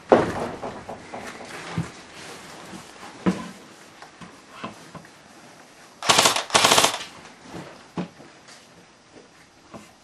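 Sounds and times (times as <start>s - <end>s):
airsoft rifle bursts: 6.0s - 7.1s.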